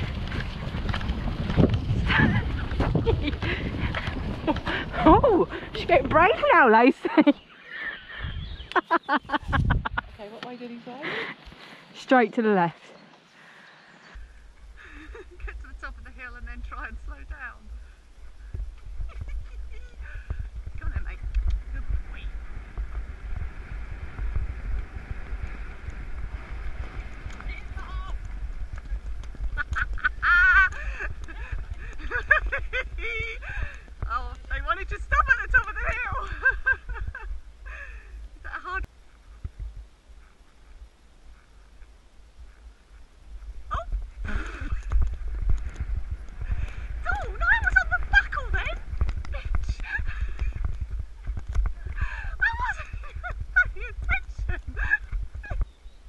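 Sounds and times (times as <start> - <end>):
horse moving over wet grass: 0.0 - 7.4, 14.5 - 37.6, 38.2 - 56.0
wind buffeting microphone: 0.0 - 12.7, 14.0 - 56.0
voices calling and laughing: 2.0 - 22.4, 29.3 - 38.9, 43.7 - 45.2, 46.4 - 55.8.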